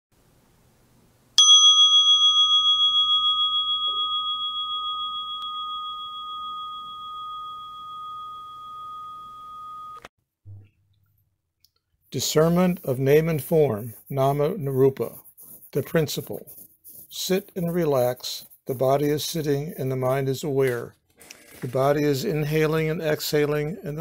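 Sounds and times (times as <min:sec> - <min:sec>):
meditation bell ringing: 0:01.4 - 0:10.1.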